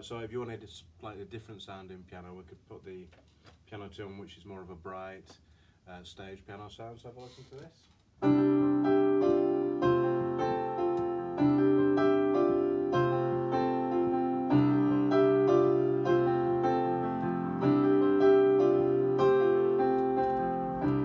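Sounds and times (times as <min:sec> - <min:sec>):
electric piano chords: 0:08.2 - 0:21.0.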